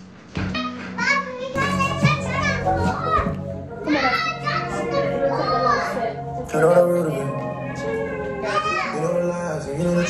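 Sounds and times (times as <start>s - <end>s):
background music: 0.4s - 10.0s
children shouting: 1.1s - 10.0s.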